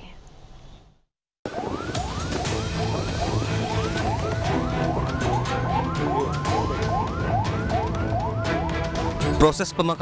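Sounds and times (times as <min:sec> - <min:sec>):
ambulance siren yelping: 0:01.5 - 0:09.6.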